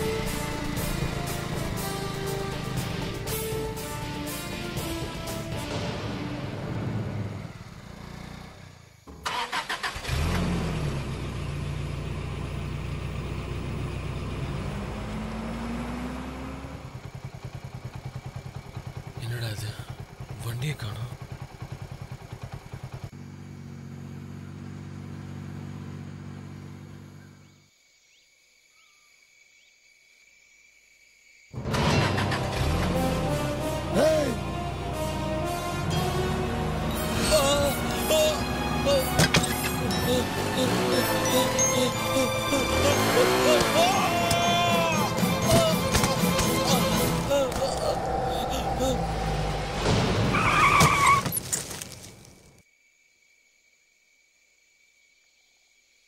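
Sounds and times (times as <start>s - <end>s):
film music: 0.0s - 7.7s, 31.6s - 50.6s
motorcycle engine revving: 0.0s - 27.5s, 31.6s - 51.4s.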